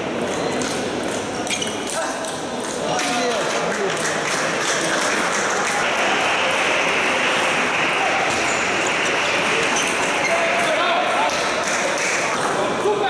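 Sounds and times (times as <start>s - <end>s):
spectators' voices: 0.0s - 13.0s.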